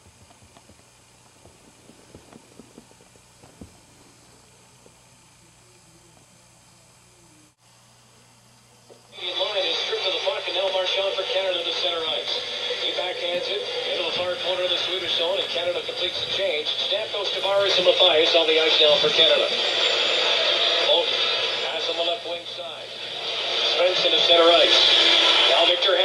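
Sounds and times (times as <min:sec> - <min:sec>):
sports commentator on radio: 0:09.2 - 0:19.6, 0:20.8 - 0:22.9, 0:23.6 - 0:26.0.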